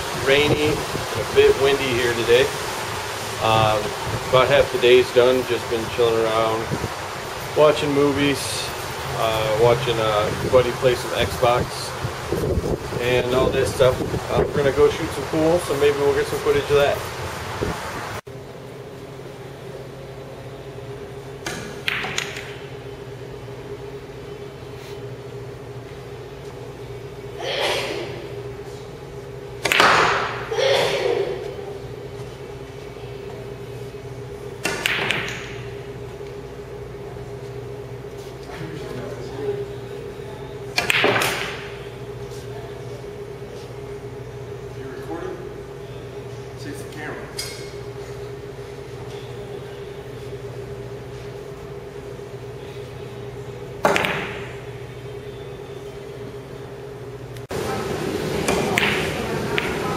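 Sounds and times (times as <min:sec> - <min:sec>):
steady low hum: 0:00.0 - 0:59.9
pool balls knocking: 0:21.4 - 0:22.7, 0:29.6 - 0:30.5, 0:34.6 - 0:35.7, 0:40.7 - 0:41.9, 0:53.8 - 0:54.7, 0:57.5 - 0:59.9
pool balls clacking: 0:21.4 - 0:22.8, 0:29.6 - 0:30.5, 0:34.6 - 0:35.8, 0:40.7 - 0:41.9, 0:53.8 - 0:54.7, 0:57.5 - 0:59.9.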